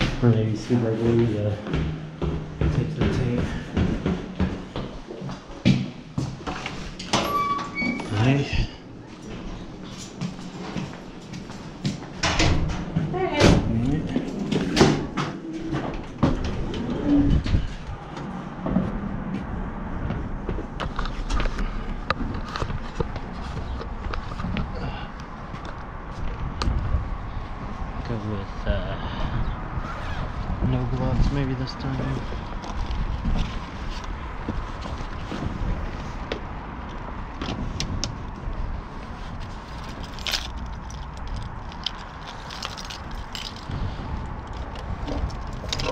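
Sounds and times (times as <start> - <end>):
street background noise: 0.0 - 45.9
doors opening and shutting: 6.4 - 8.5, 12.0 - 19.3.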